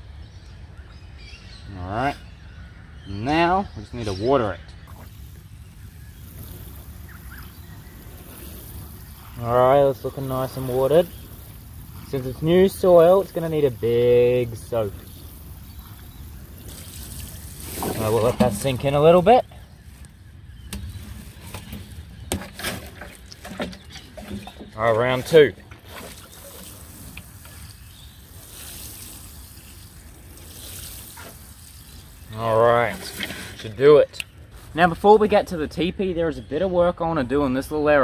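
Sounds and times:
faint chirps: 4.0 - 21.8
watering can spraying onto soil: 4.9 - 22.8, 25.1 - 33.6
plastic watering cans knocking: 17.7 - 18.9.

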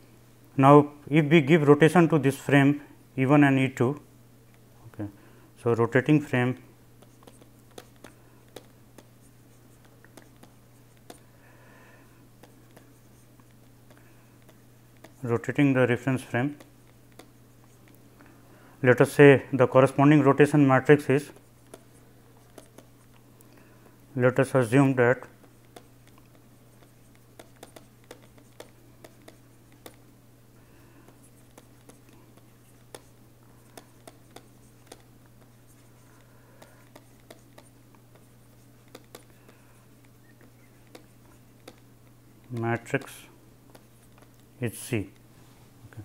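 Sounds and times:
faint low hum: 0.0 - 46.0
light stylus taps: 7.0 - 9.1, 25.4 - 30.0, 38.9 - 41.9
stylus scratching on tablet: 7.0 - 11.3, 12.4 - 18.0, 19.8 - 23.2, 24.3 - 30.1, 30.8 - 44.6
pen scratching on paper: 12.4 - 13.6, 25.4 - 30.0, 31.2 - 39.3.

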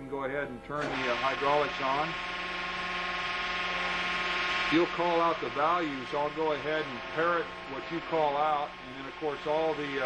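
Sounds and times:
hydraulic unit rushing hum: 0.6 - 10.0.

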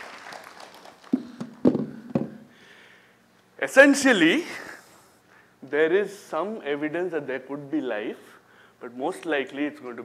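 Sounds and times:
audience applause: 0.0 - 1.8.

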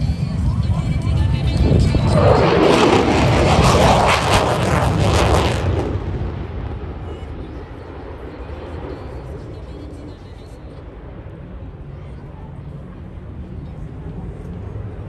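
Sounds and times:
fighter jet engine crackling roar: 0.9 - 11.9.

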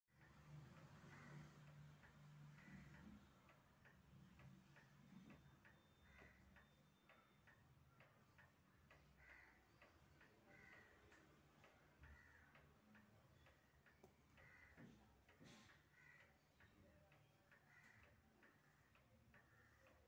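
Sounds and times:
faint regular ticking: 0.2 - 20.0.

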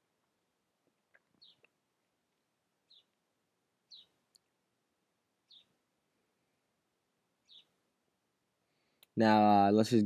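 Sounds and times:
small bird chirping: 1.1 - 1.8, 2.8 - 3.2, 3.8 - 4.5, 5.4 - 5.8, 7.4 - 7.8
faint clicks: 4.3 - 4.6, 8.9 - 9.2.

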